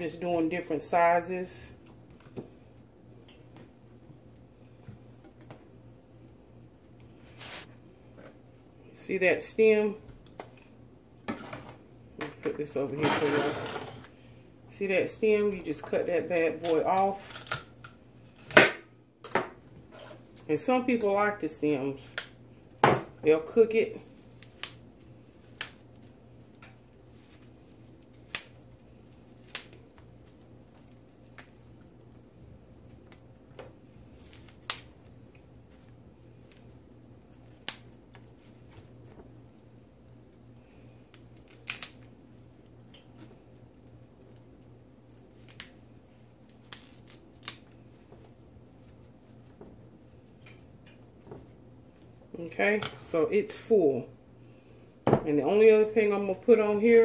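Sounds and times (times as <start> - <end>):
faint steady hum: 0.0 - 57.0
broccoli snapping by hand: 41.1 - 42.1.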